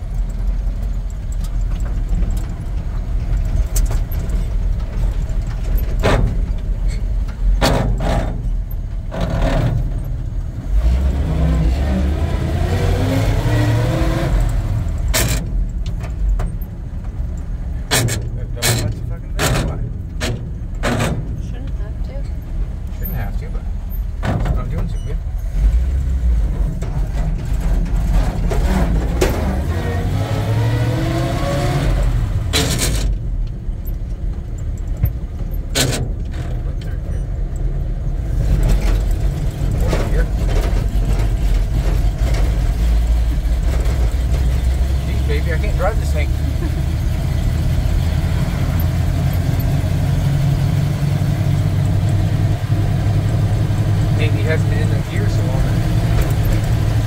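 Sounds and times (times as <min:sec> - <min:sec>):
truck engine accelerating: 0:00.0 - 0:57.0.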